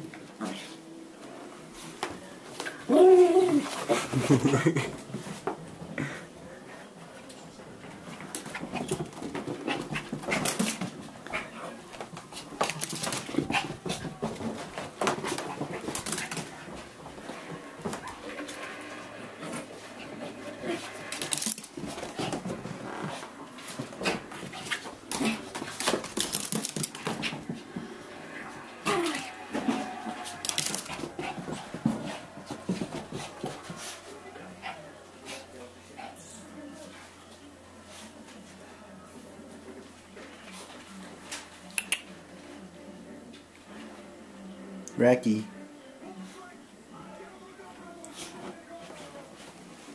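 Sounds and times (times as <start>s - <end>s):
clicks and scuffles of dog running: 7.2s - 18.8s, 19.4s - 36.2s.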